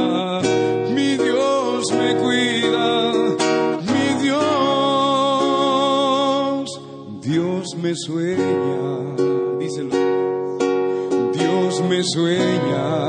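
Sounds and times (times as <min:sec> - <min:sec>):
strummed acoustic guitar: 0:00.0 - 0:13.0.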